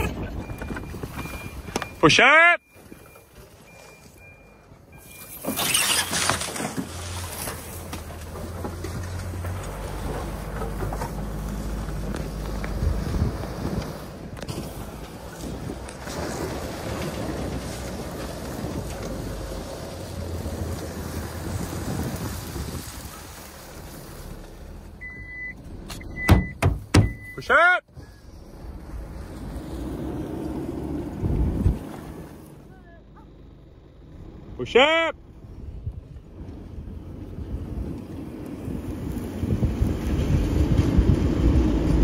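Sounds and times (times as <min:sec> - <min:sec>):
short high beeps: 0:00.0 - 0:05.4, 0:25.0 - 0:27.4
wind and road noise: 0:00.0 - 0:42.0
loud thumps: 0:26.1 - 0:27.2.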